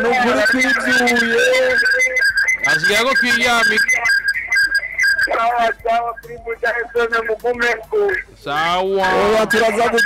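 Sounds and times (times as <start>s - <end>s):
high-pitched whistle-like notes: 0.2s - 5.4s.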